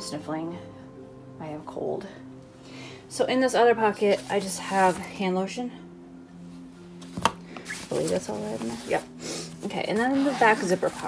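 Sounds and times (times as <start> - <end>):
fabric rustling: 4.0 - 5.2, 6.9 - 11.0.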